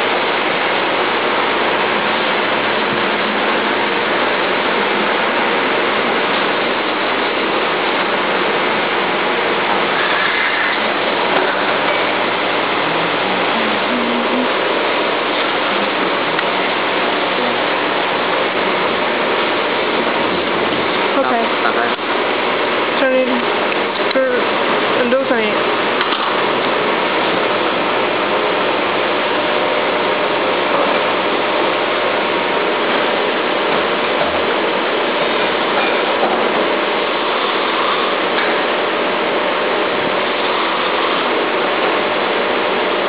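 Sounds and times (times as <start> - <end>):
steady loud hiss: 0.0 - 43.0.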